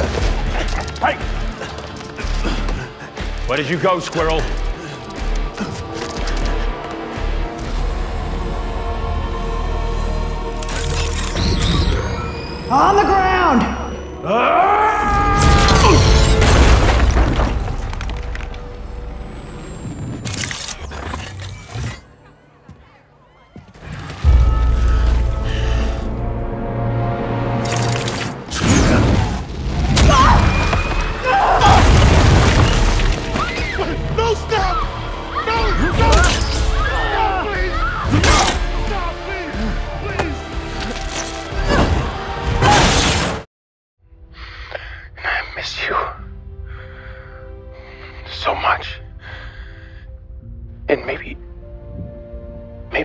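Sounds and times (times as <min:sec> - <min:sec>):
fight scene music: 0:00.0 - 0:09.9, 0:23.8 - 0:43.5
falling debris: 0:15.4 - 0:18.6, 0:28.8 - 0:33.7
film score with low rumble: 0:44.1 - 0:53.0.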